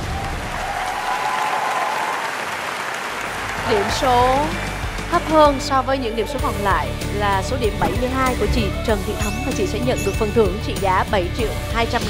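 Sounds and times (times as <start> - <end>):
audience applauding: 0.0 - 5.6.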